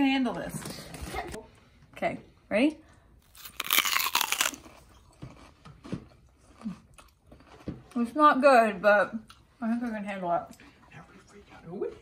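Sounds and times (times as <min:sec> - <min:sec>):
loud crunch of biting cereal: 0:03.2 - 0:05.6
chewing crunches: 0:03.2 - 0:07.9.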